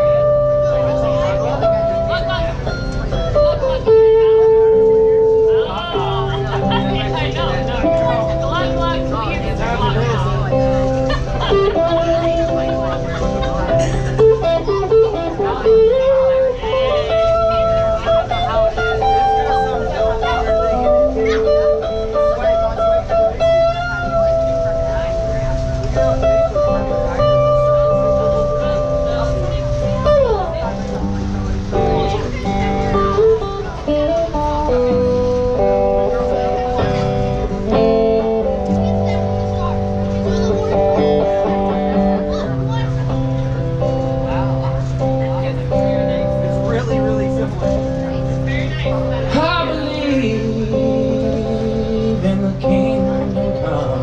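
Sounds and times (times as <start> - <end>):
electric guitar held notes: 0.0 - 54.0.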